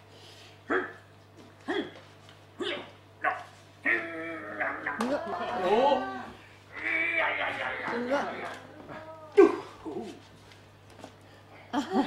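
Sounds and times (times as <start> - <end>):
man barking like a dog: 0.7 - 1.0, 2.6 - 5.2.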